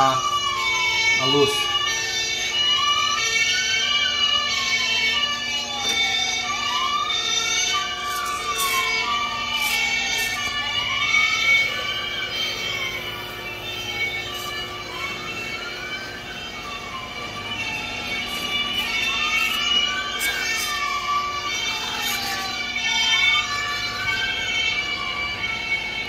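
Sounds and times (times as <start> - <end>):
toy siren wailing: 0.0 - 26.0
steady beeping tones: 6.3 - 24.8.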